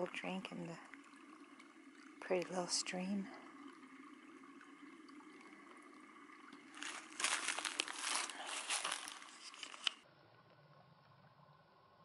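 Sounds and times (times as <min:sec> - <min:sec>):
small stream trickling: 0:00.0 - 0:10.1
dry grass and brush crunching: 0:06.7 - 0:10.0.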